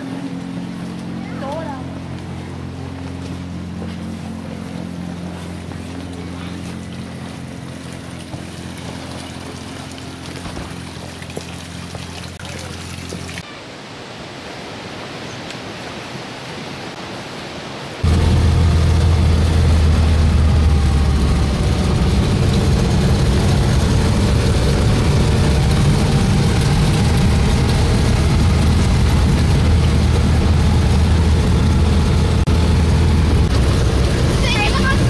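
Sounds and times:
vehicle engine drone: 0.0s - 13.4s, 18.0s - 35.0s
road noise inside vehicle: 18.0s - 35.0s.

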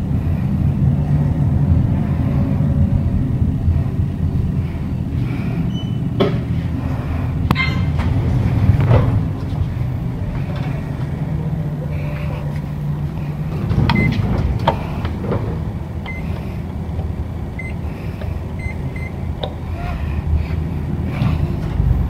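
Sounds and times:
low machinery hum: 0.0s - 22.0s.

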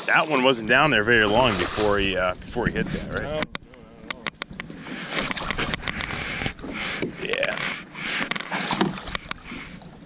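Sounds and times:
water splashing against boat: 0.0s - 10.0s
sharp clicks: 3.2s - 6.1s.

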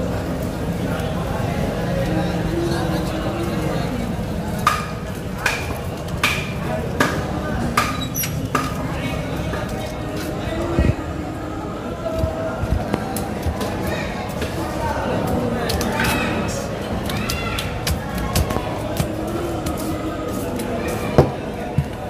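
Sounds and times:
murmur of voices: 0.0s - 22.0s.

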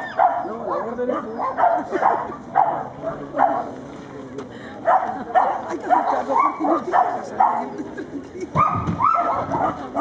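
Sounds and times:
dog barking: 0.1s - 3.7s, 4.9s - 7.6s, 8.6s - 10.0s.

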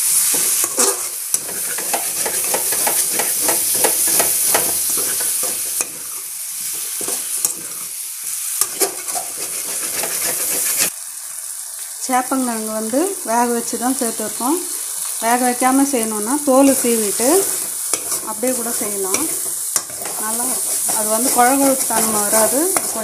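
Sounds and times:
food sizzling in oil: 0.0s - 23.0s
metal ladle scraping a pan: 0.2s - 7.8s, 8.6s - 10.9s, 17.1s - 23.0s.

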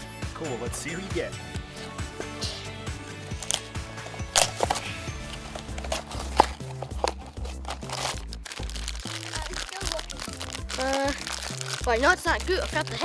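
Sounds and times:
background music with bass notes: 0.0s - 13.0s
foil bag crinkling: 3.4s - 13.0s
cardboard box torn open: 4.3s - 12.0s.

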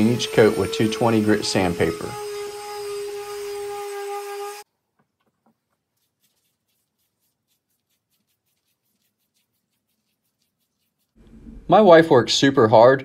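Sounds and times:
electric sander humming: 0.0s - 4.6s
foam applicator brushing wood: 0.0s - 4.6s, 5.8s - 11.2s.

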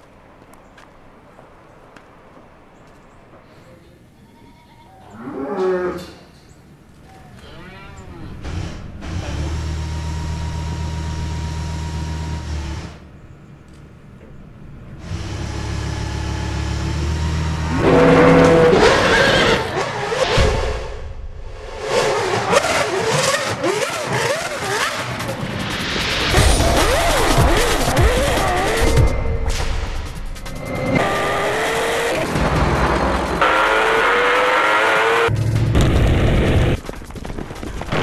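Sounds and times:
car engines revving: 8.1s - 36.8s
music: 25.2s - 31.0s, 32.2s - 33.4s.

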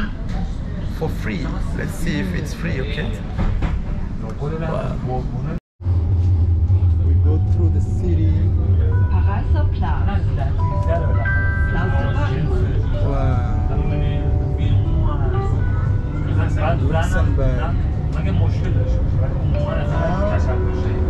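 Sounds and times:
tram rumbling: 0.0s - 21.0s.

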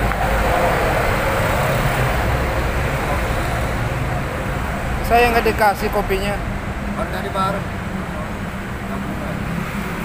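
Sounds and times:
cars and motorcycles passing: 0.0s - 10.0s.

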